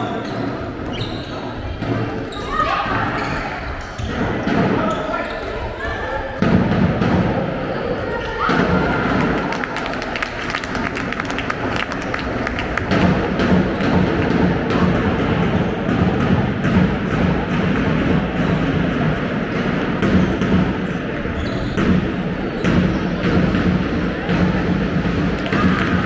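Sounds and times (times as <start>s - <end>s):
handball bouncing on floor: 11.4s - 20.8s, 21.4s - 26.0s.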